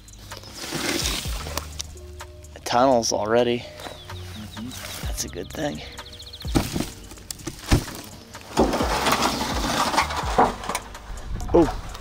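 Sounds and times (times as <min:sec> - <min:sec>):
dry grass crunching and rustling: 0:00.2 - 0:01.8, 0:03.7 - 0:11.0
sharp knocks: 0:06.5 - 0:08.9.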